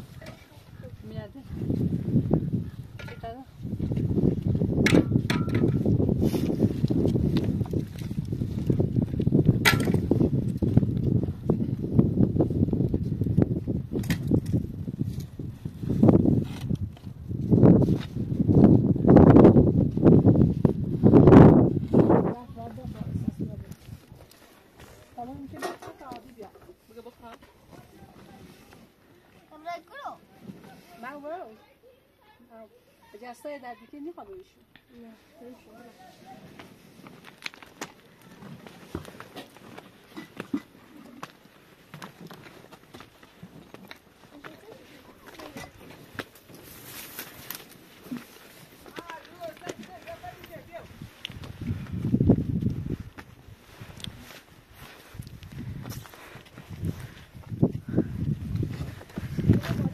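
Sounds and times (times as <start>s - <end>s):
wind buffeting microphone: 0.0s - 24.2s, 49.1s - 59.9s
footsteps on stony ground: 3.5s - 28.8s, 35.5s - 59.9s.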